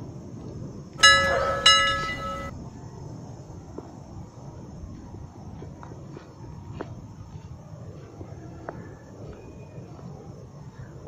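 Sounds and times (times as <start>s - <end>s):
bell-like chime: 1.0s - 2.5s.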